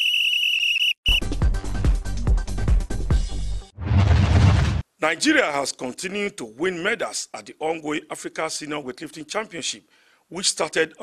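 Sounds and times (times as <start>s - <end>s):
shrill whistle blasts: 0.0s - 1.3s
music with heavy beat and bass: 1.2s - 3.6s.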